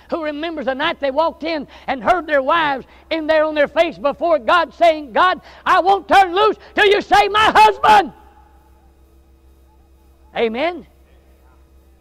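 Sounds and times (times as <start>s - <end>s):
faint steady room hum: 0.0s - 12.0s.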